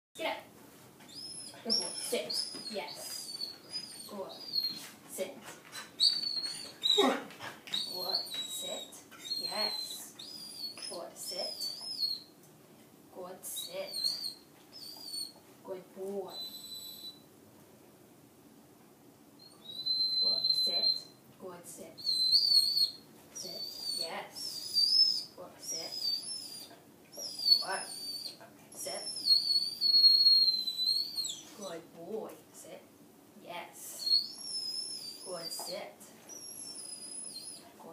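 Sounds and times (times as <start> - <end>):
puppy whimpering: 1.1 - 4.9, 5.7 - 12.3, 13.7 - 15.4, 16.3 - 17.2, 19.4 - 21.1, 22.0 - 28.4, 29.0 - 31.6, 34.0 - 37.8.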